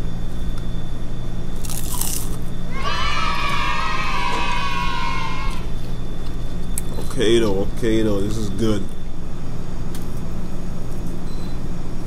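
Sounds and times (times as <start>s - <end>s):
crunchy bite into fried food: 1.6s - 2.4s.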